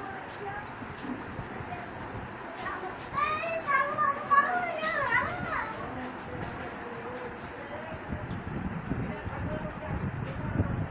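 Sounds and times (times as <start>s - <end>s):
children calling out: 2.6s - 6.2s.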